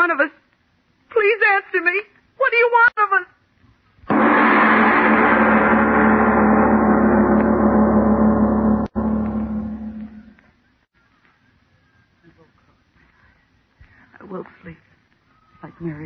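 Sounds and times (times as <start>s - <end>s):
gong-like dramatic sting: 4.1s - 10.4s.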